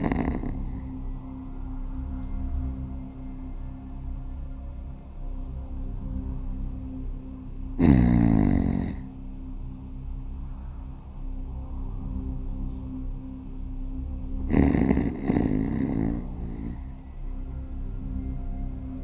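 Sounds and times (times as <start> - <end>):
man snoring: 0.0 - 1.0, 7.8 - 9.1, 14.5 - 17.0
background music: 0.0 - 19.0.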